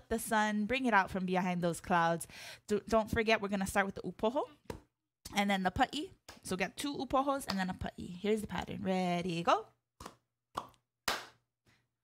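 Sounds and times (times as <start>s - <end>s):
hand claps: 10.0s - 11.4s.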